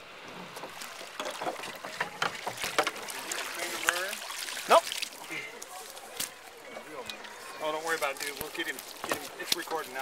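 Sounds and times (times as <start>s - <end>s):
water splashing: 0.0s - 10.0s.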